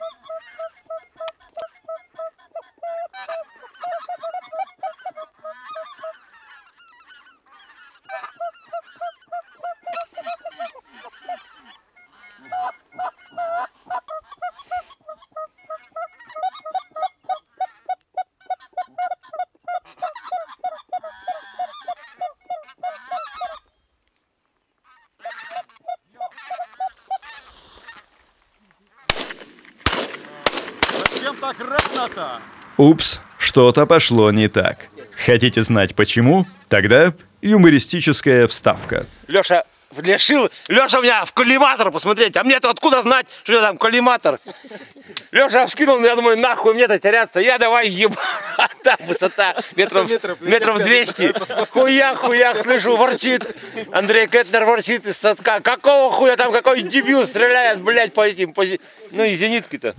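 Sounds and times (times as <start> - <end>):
goose call honks: 0.0 - 23.7, 24.8 - 28.1, 34.8 - 37.3
shotgun shots: 29.1 - 32.6.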